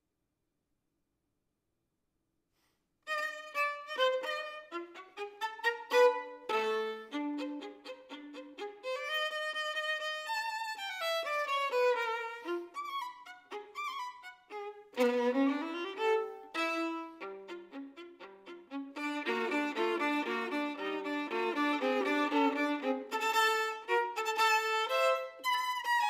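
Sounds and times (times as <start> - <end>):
solo violin: 3.1 - 26.0.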